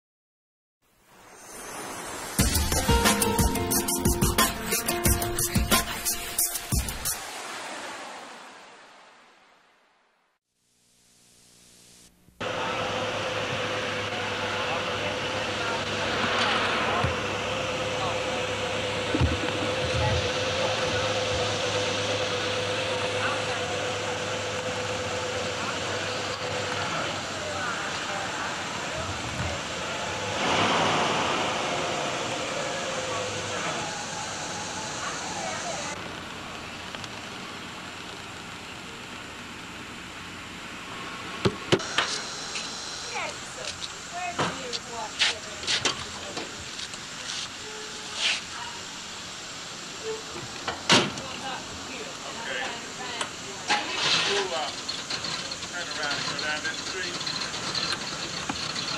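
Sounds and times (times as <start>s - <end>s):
steady street hiss: 0.8s - 58.9s
cars passing: 12.4s - 37.7s.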